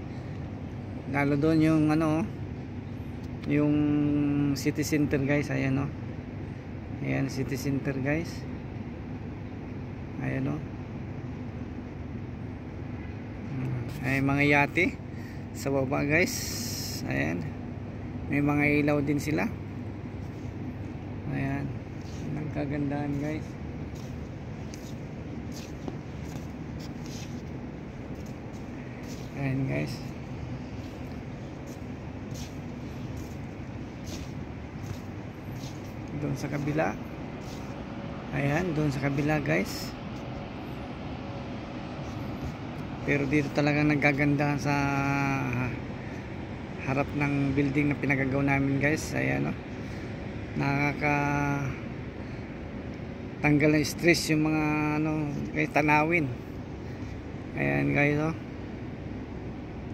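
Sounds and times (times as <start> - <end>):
distant city traffic hum: 0.0 - 59.9
man's voice: 29.3 - 30.2, 36.1 - 37.0, 38.3 - 40.0, 43.0 - 45.8.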